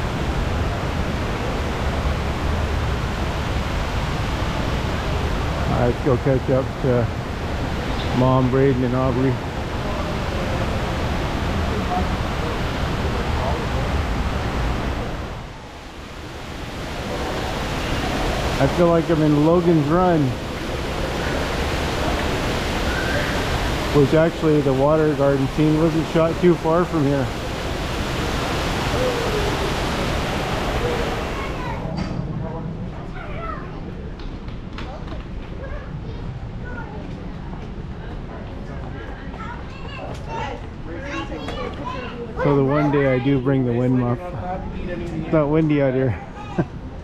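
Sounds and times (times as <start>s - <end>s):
steady rushing noise: 0.0s - 47.0s
visitors chatting: 5.3s - 34.0s, 34.8s - 47.0s
man speaking close to microphone: 5.7s - 7.2s, 8.1s - 9.4s, 18.6s - 20.4s, 23.9s - 27.4s, 42.4s - 46.2s
children's voices: 30.8s - 32.0s, 33.0s - 34.1s, 35.5s - 37.4s, 39.2s - 43.8s, 46.1s - 46.9s.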